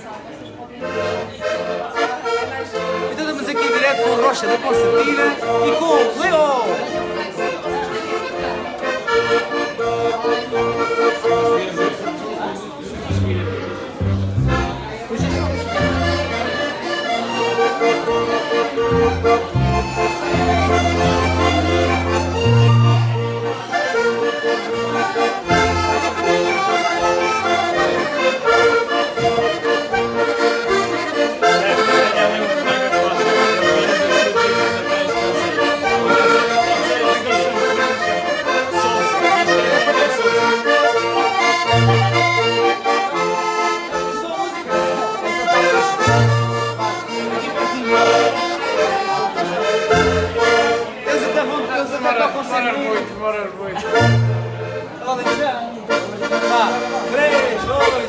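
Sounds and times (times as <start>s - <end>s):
button accordions playing dance tune: 0.8s - 58.0s.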